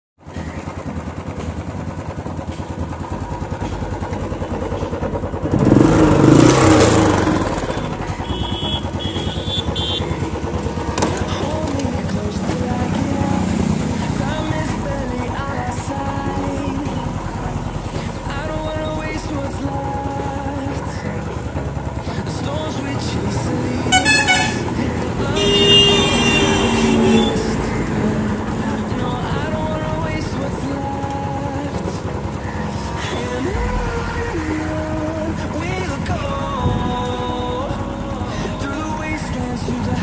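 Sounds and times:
motorcycle engine idling and revving: 0:00.2 - 0:40.0.

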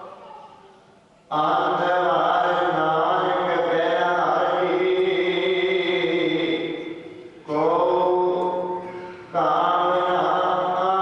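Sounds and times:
man chanting into microphone: 0:01.3 - 0:11.0.

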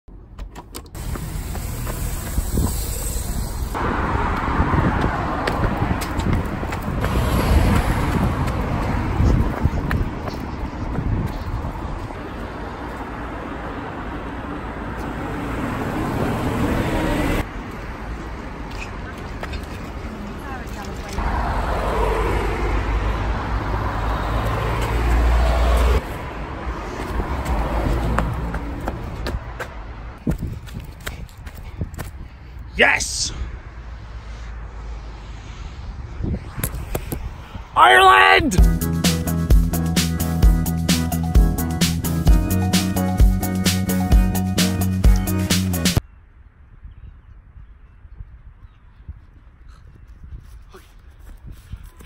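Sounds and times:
quiet street noise: 0:00.1 - 0:38.6, 0:46.0 - 0:52.0
cars driving past: 0:00.9 - 0:30.2, 0:33.0 - 0:37.8
wind on microphone: 0:02.0 - 0:12.2, 0:30.2 - 0:32.4, 0:34.6 - 0:37.8, 0:46.5 - 0:52.0.

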